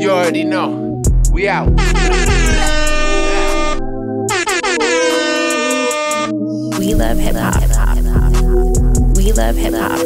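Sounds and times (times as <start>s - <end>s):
hip-hop beat: 0.0s - 10.0s
air horn blasts: 1.7s - 6.4s.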